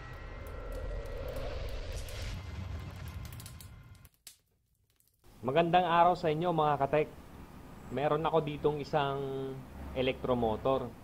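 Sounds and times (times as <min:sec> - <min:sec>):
rushing swell: 0:00.0 - 0:04.0
deep rumble: 0:00.0 - 0:04.1.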